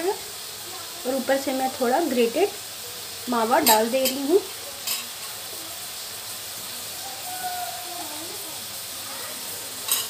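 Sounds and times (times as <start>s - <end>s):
steady hiss: 0.0s - 10.0s
faint distant voice: 6.6s - 10.0s.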